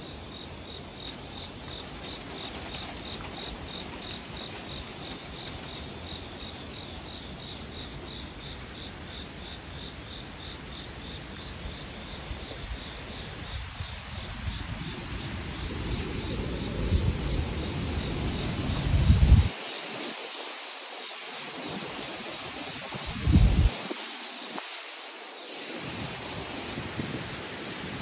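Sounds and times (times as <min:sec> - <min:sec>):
insect chirping: 0:00.0 - 0:26.6
outdoor background hiss: 0:00.0 - 0:28.0.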